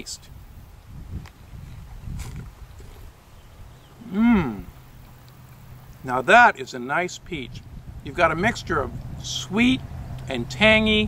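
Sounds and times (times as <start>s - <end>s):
person biting and chewing peach: 1.2s - 3.2s.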